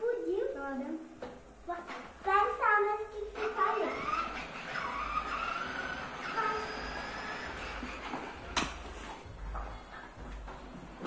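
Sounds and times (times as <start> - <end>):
plastic wheels rolling on tile: 3.3 - 9.2.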